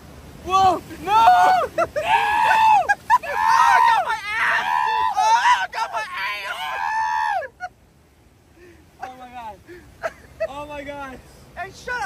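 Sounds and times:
man yelling high-pitched: 0:00.4 - 0:07.4.

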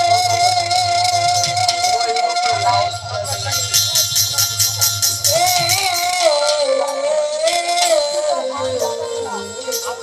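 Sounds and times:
light percussion: 0:00.0 - 0:10.0
violin melody with vibrato: 0:00.0 - 0:10.0.

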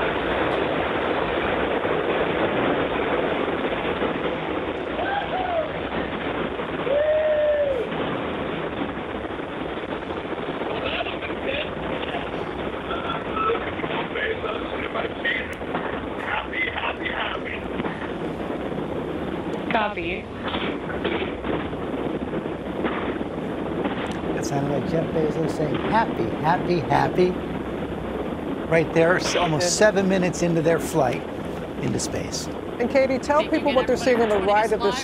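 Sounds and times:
radio feed hiss: 0:10.1 - 0:18.4, 0:19.7 - 0:21.6, 0:23.9 - 0:27.6, 0:28.6 - 0:35.0.

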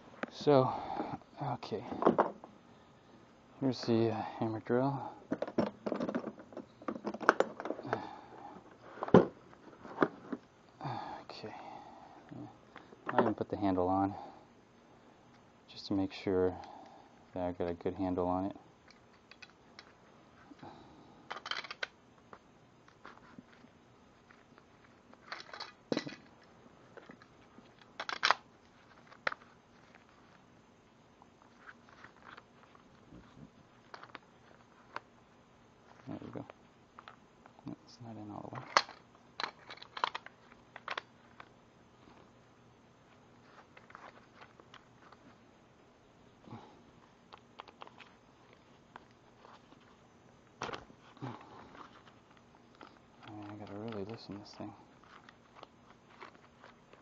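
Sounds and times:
plastic case clicks and knocks: 0:05.3 - 0:07.8
plastic and metal clicks and scrapes: 0:27.0 - 0:30.3, 0:38.5 - 0:41.5, 0:51.7 - 0:57.0.

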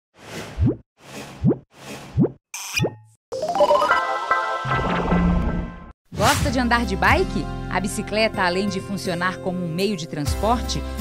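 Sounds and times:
rising bloop sound effects: 0:02.6 - 0:05.9
music jingle: 0:03.3 - 0:05.9.

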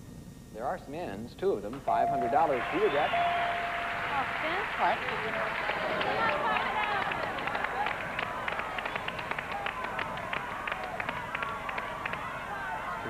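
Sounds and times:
voices calling out: 0:02.0 - 0:13.0.

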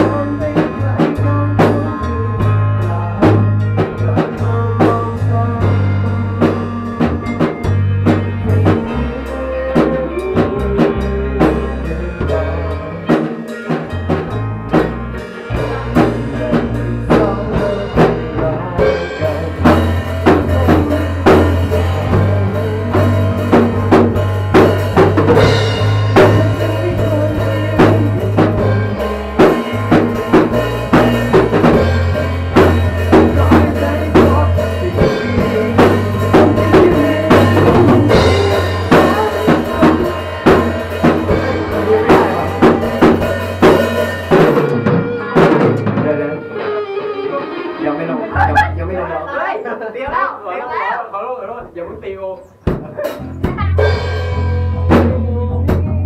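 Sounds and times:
electric guitars: 0:00.0 - 0:50.3, 0:52.5 - 0:56.0
bass guitar: 0:00.0 - 0:50.8, 0:51.6 - 0:56.0
drum kit beat: 0:00.0 - 0:50.8, 0:51.5 - 0:56.0.

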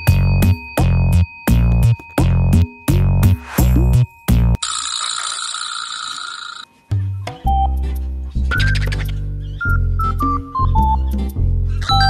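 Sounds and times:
electronic background music: 0:00.0 - 0:04.6, 0:06.9 - 0:12.0.

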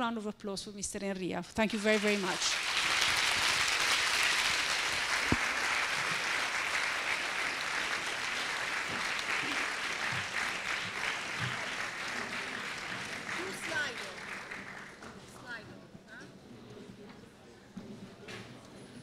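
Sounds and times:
audience applauding: 0:01.8 - 0:15.6.

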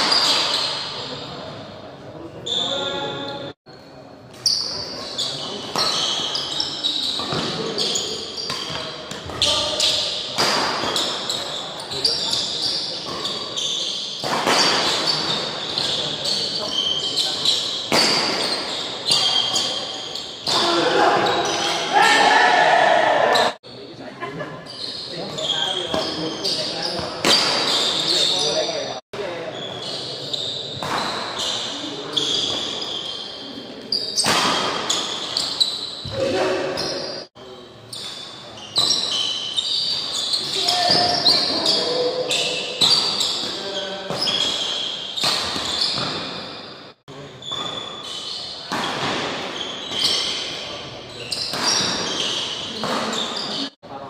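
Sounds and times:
shoe squeaks on court floor: 0:00.0 - 0:01.5, 0:02.4 - 0:21.9, 0:24.6 - 0:53.8
players' voices: 0:00.2 - 0:35.4, 0:36.0 - 0:39.1, 0:40.2 - 0:45.0
rackets hitting shuttlecock: 0:14.2 - 0:16.0, 0:17.3 - 0:19.7, 0:42.8 - 0:46.4.

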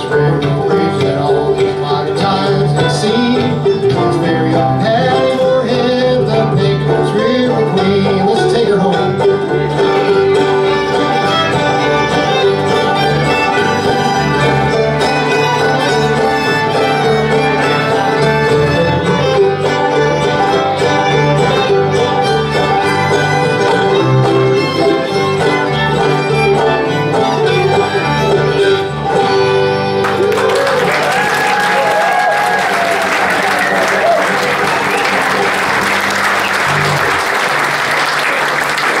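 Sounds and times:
string band playing: 0:00.0 - 0:39.0
audience applause: 0:09.8 - 0:26.0, 0:30.0 - 0:39.0.

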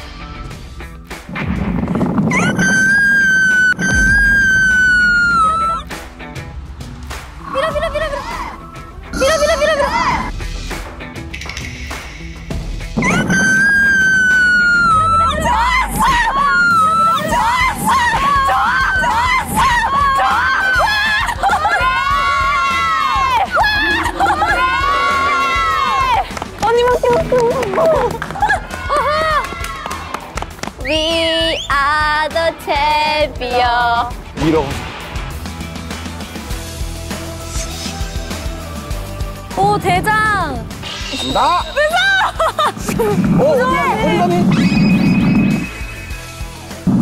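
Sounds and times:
background music: 0:00.0 - 0:47.0
young women screaming and cheering: 0:02.3 - 0:05.9, 0:07.5 - 0:10.3, 0:13.0 - 0:26.6, 0:27.2 - 0:31.4.

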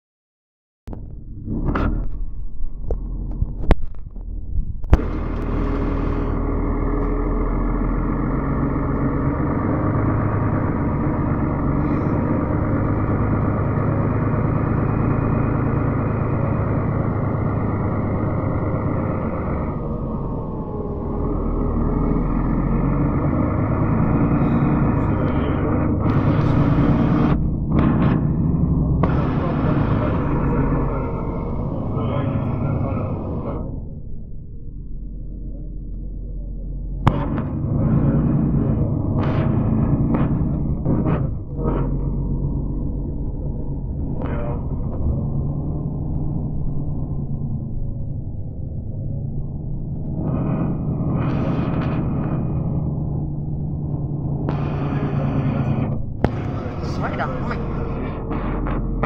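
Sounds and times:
bus engine drone: 0:00.9 - 0:59.0.

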